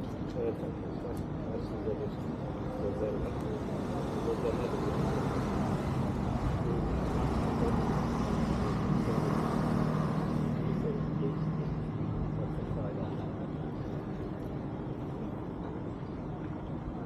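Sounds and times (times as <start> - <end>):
faint voices: 0.0 - 17.0
street traffic: 0.0 - 17.0.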